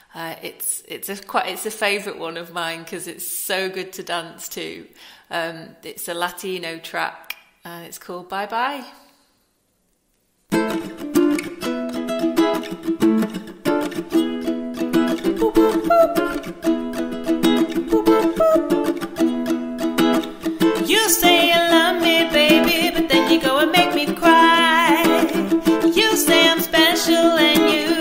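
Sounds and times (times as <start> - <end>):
ukulele strumming: 10.5 - 28.0
woman singing: 15.3 - 16.6, 17.7 - 19.1, 20.6 - 28.0.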